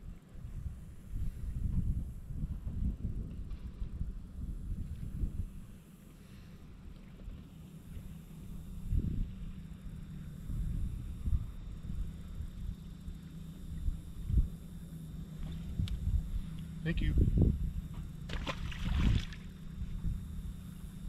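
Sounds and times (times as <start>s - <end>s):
wind buffeting microphone: 0.0s - 6.0s, 6.8s - 21.0s.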